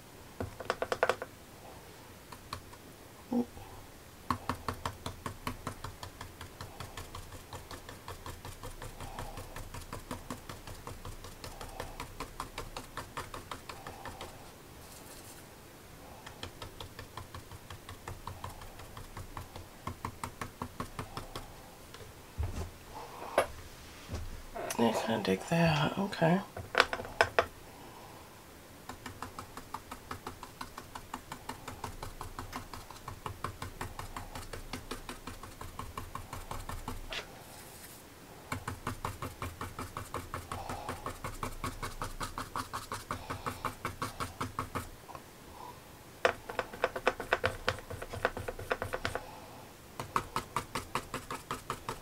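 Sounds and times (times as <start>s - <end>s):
paintbrush tapping on paper: 0.4s - 1.3s, 4.3s - 14.4s, 16.2s - 21.5s, 26.6s - 27.5s, 28.9s - 37.2s, 38.5s - 45.0s, 46.2s - 49.3s, 50.0s - 52.0s.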